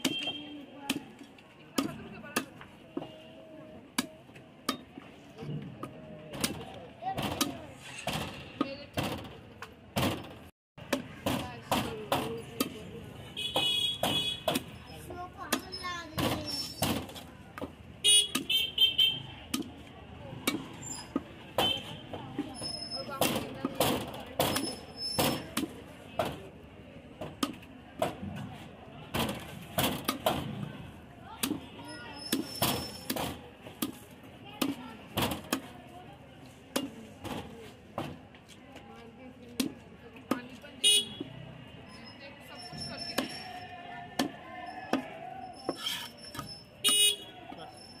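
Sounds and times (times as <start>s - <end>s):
cleaver chopping fish on wood: 16.8s - 18.6s
vehicle horn tooting: 46.8s - 47.3s.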